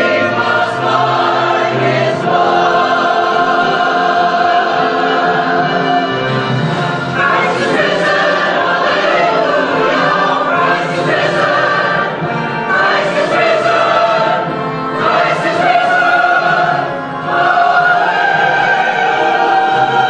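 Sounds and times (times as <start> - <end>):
church choir singing in harmony: 0.0 - 20.0.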